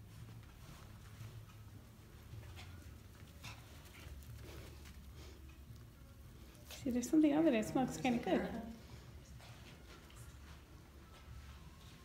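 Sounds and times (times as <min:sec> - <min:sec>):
dog paws tapping on carpet: 0:00.0 - 0:07.3
low room hum: 0:00.0 - 0:12.0.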